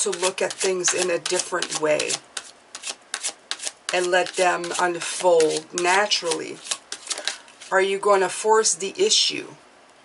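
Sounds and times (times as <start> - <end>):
cards being shuffled: 0.0 - 7.7.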